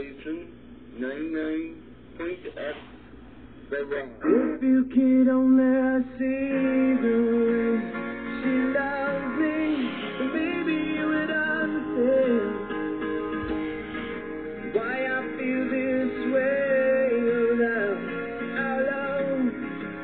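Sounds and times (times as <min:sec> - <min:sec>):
song with guitar and singing on radio: 0:02.0 - 0:20.0.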